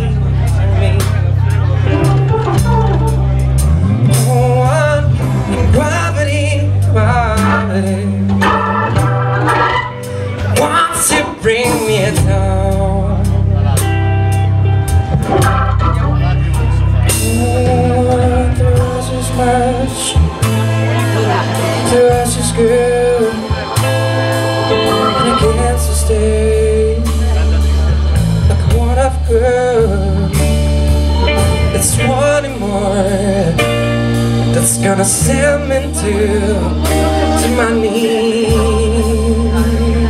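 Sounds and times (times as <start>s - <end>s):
live blues band: 0.0s - 40.0s
organ: 0.0s - 40.0s.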